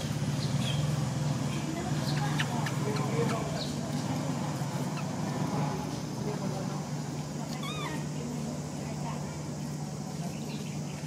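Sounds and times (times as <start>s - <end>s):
steady low hum: 0.0s - 11.0s
monkey squeaking: 2.0s - 3.8s, 4.5s - 5.3s, 7.5s - 8.1s.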